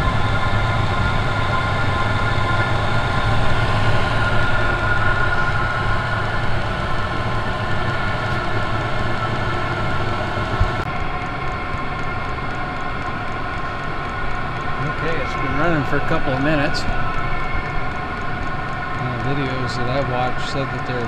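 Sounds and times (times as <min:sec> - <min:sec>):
heater blower fan whining: 0:00.0 - 0:21.0
low burner rumble: 0:00.0 - 0:21.0.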